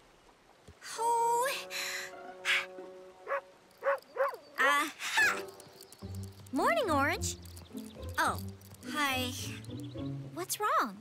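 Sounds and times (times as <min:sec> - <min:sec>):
soft background music: 0:00.8 - 0:11.0.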